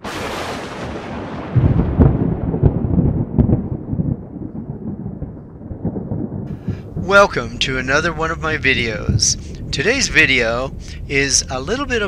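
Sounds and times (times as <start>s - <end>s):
rumbling boom: 0.0s - 12.0s.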